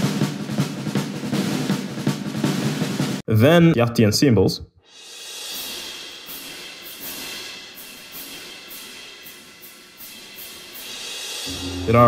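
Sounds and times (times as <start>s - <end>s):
clash cymbal crashes: 4.9s - 12.0s
cymbal swell: 5.0s - 12.0s.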